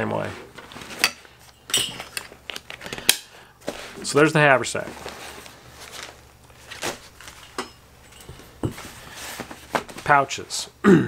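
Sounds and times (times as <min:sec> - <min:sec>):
fabric rustling: 0:03.6 - 0:10.2.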